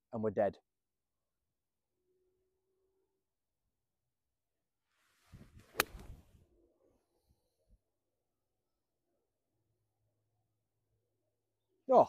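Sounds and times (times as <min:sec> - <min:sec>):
golf club swishing through grass: 0:04.9 - 0:06.4
clubface striking golf ball: 0:05.6 - 0:06.3.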